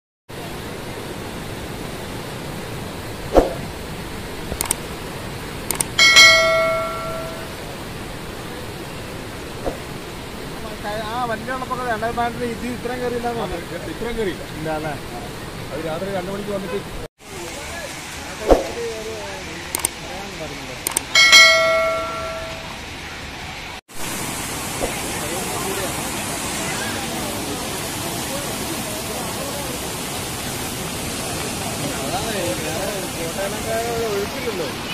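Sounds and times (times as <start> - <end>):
steady background hiss: 0.4 - 34.9
metallic bell-like strike: 6.0 - 7.5, 21.2 - 22.7.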